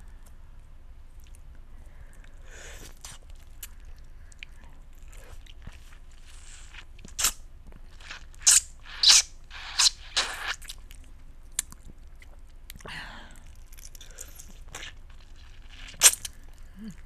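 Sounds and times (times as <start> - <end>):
lip clicks: 1.2 - 17.0
sucking and slurping lemon: 5.0 - 10.8, 13.3 - 17.0.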